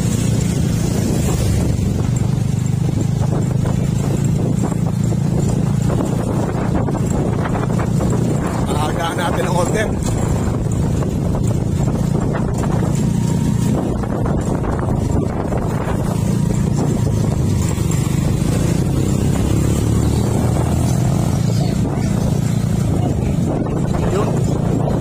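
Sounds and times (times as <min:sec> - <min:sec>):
motorcycle engines running: 0:00.0 - 0:25.0
road noise: 0:00.0 - 0:25.0.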